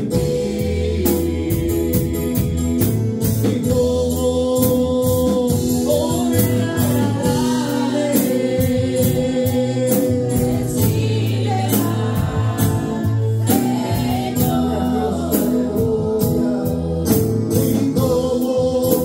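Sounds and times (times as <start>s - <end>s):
congregation singing gospel song: 0.0s - 19.0s
live band accompaniment: 0.0s - 19.0s.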